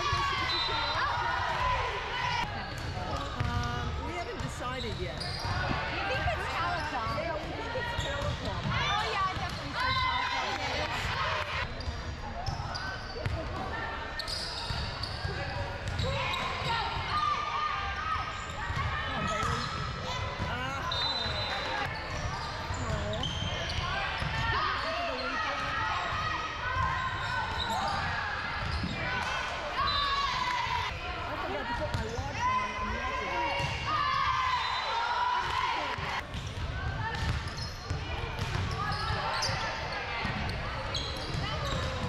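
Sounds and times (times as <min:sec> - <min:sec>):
voices calling out in a hall: 0:00.0 - 0:42.0.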